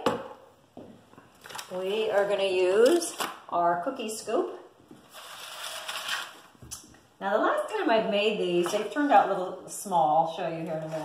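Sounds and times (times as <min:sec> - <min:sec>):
metal sheet scraping on stone: 0:05.1 - 0:06.4.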